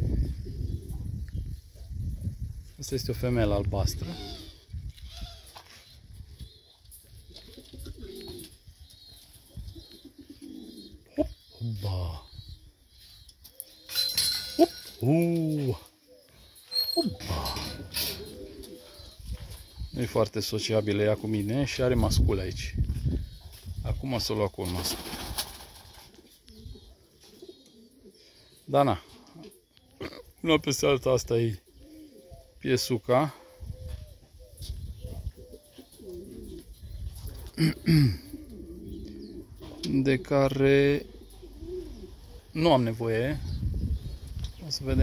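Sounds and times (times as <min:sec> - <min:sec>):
pigeons cooing: 0:00.0 - 0:02.5, 0:03.2 - 0:23.7, 0:24.3 - 0:45.0.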